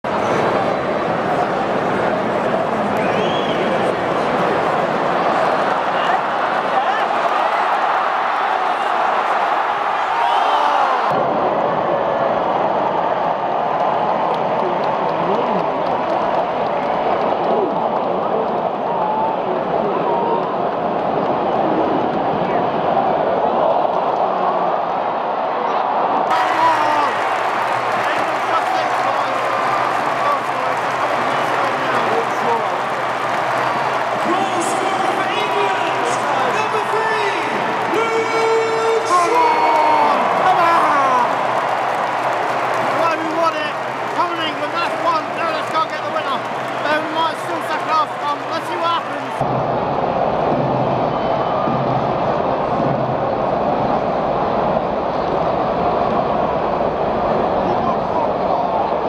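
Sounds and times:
stadium crowd din: 0:00.0 - 0:59.0.

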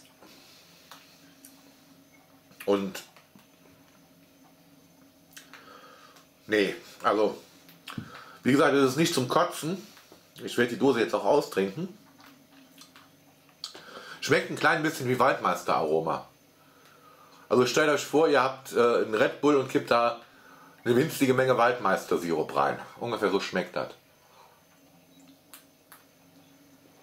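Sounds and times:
faint steady hum: 0:00.0 - 0:27.0
faint small ticks: 0:00.8 - 0:06.3
man swallowing: 0:05.3 - 0:05.7.

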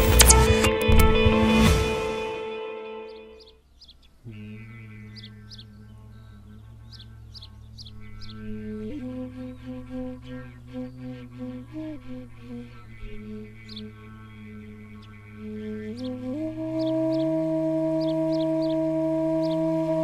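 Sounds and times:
birds chirping: 0:03.0 - 0:20.0
low steady drone: 0:04.3 - 0:20.0
low end-blown flute melody: 0:08.5 - 0:14.5, 0:15.3 - 0:20.0.

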